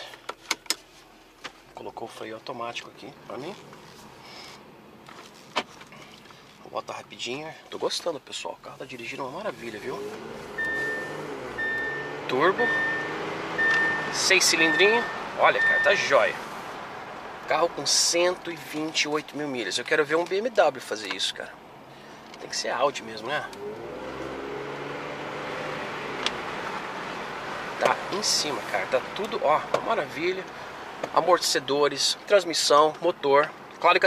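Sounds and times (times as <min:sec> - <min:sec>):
road and tyre hum: 0:00.0 - 0:34.0
car engine from inside cabin: 0:09.2 - 0:19.0, 0:22.3 - 0:30.7
car engine running: 0:09.5 - 0:17.9
seatbelt warning chime beeping: 0:10.6 - 0:16.1.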